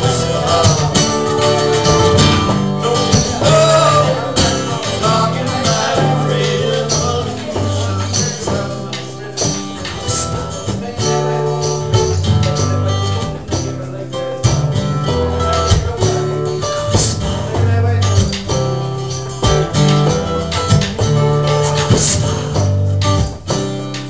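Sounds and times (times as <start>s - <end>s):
acoustic guitar strumming: 0.0s - 24.0s.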